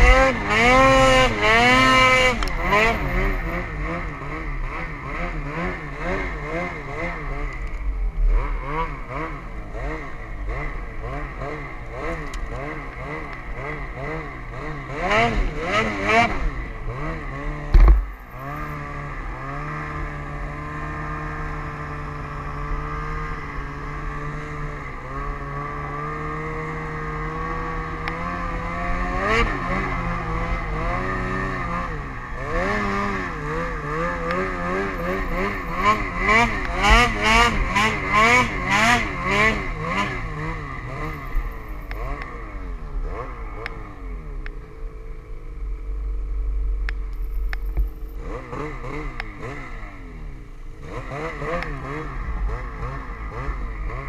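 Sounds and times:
snowmobile engine revving: 0:00.0 - 0:54.0
sharp thump: 0:17.7 - 0:18.2.

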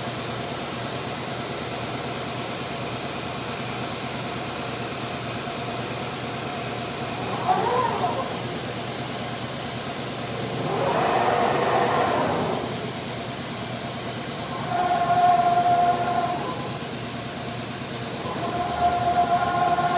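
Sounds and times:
router motors humming and whining: 0:06.4 - 0:19.9.

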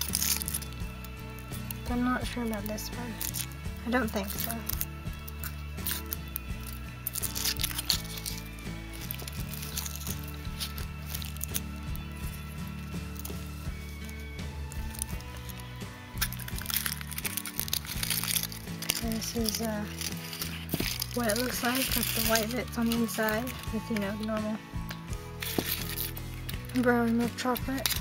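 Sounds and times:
background music: 0:00.0 - 0:28.0
foil wrapper crinkling: 0:00.0 - 0:28.0.

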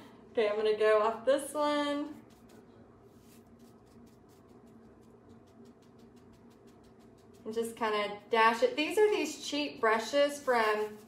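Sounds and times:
paintbrush scratchy strokes: 0:02.1 - 0:11.0.

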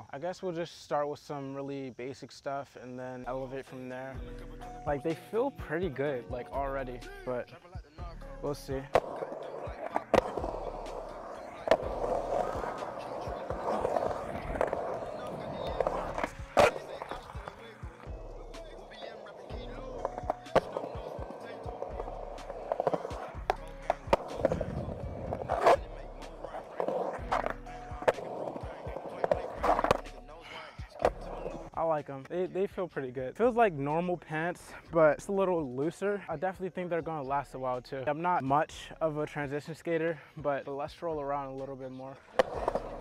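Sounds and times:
skateboard wheels rolling on concrete: 0:03.4 - 0:37.0, 0:41.0 - 0:43.0
skateboard clacks: 0:08.8 - 0:31.7, 0:42.3 - 0:43.0.

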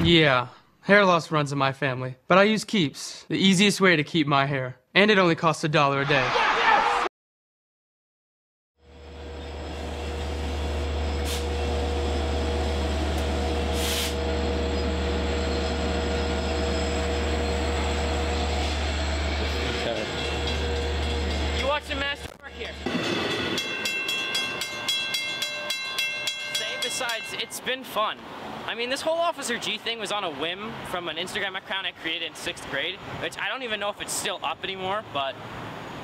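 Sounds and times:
train low rumble: 0:08.8 - 0:27.6.

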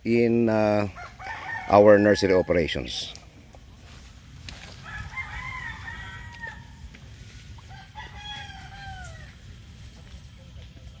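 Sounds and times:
rooster crowing: 0:00.9 - 0:03.0, 0:04.7 - 0:06.9, 0:07.6 - 0:09.5.

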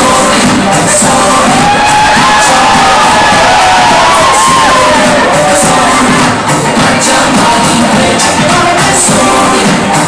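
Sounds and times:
loud dance music: 0:00.0 - 0:10.0
audience cheering and whooping: 0:01.3 - 0:06.8.

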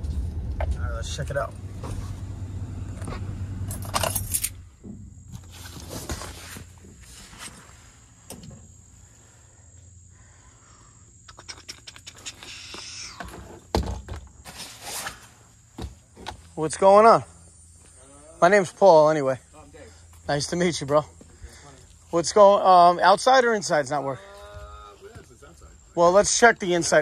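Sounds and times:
vehicle engine idling: 0:00.0 - 0:05.3
tools and gear rattling: 0:03.6 - 0:04.6.

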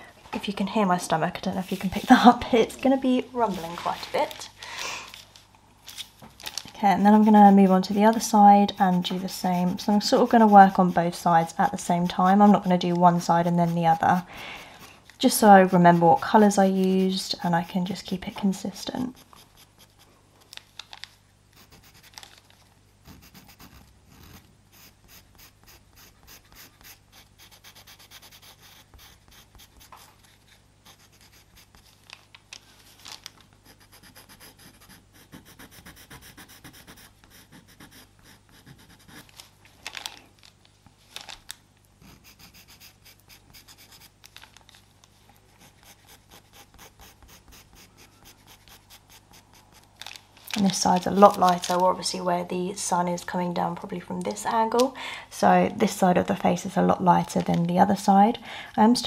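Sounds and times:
pencil scratching on paper: 0:06.8 - 0:20.1, 0:21.6 - 0:22.2, 0:23.0 - 0:31.9, 0:33.6 - 0:39.3, 0:42.0 - 0:44.2, 0:45.5 - 0:49.9.

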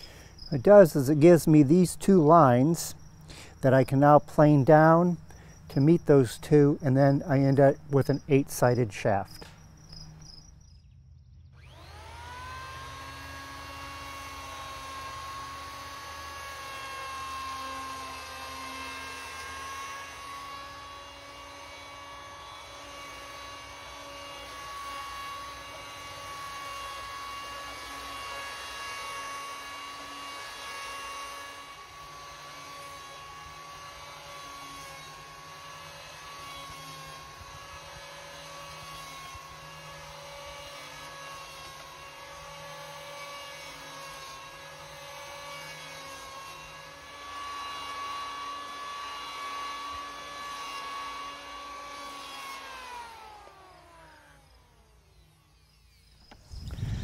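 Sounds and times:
electric planer cutting wood: 0:11.6 - 0:57.0.

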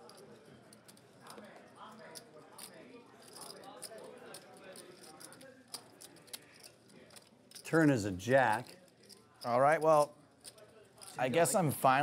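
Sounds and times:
faint murmured talk: 0:00.0 - 0:07.7.

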